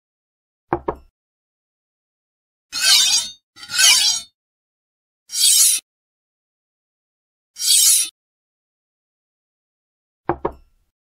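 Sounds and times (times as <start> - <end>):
knife cutting glass marble: 2.8 - 4.3, 5.3 - 5.8, 7.6 - 8.1.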